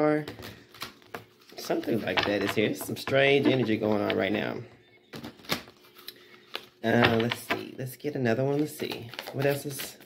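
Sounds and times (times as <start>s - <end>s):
cards being shuffled: 8.5s - 10.0s.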